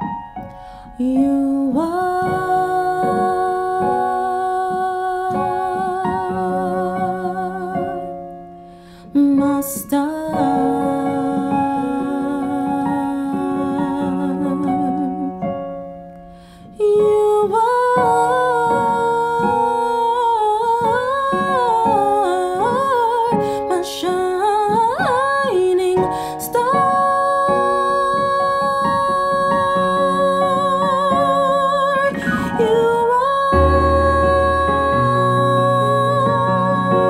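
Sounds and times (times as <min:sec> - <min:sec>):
keyboard chords: 0:00.0 - 0:37.0
woman singing with vibrato: 0:00.9 - 0:08.2, 0:09.1 - 0:15.5, 0:16.7 - 0:37.0.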